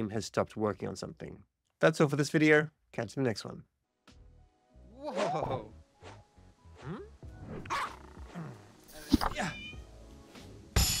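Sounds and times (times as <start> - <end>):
faint music: 1.8 - 11.0
cartoon-style cries: 9.2 - 9.8.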